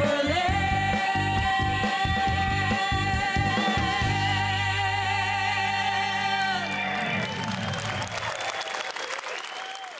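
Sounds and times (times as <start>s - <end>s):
studio audience applauding: 5.6s - 9.9s.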